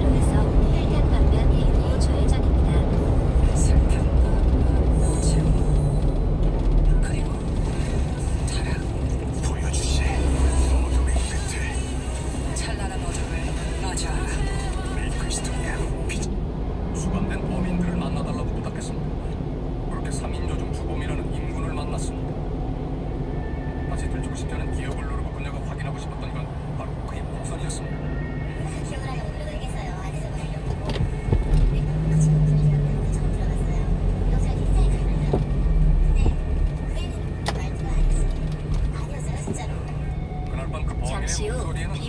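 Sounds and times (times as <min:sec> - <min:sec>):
faint radio talk and music: 0:00.0 - 0:42.0
truck engine and road rumble: 0:00.0 - 0:42.0.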